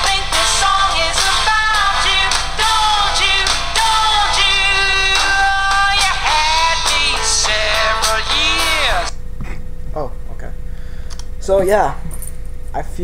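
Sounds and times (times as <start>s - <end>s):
pop song with singing: 0.0s - 9.1s.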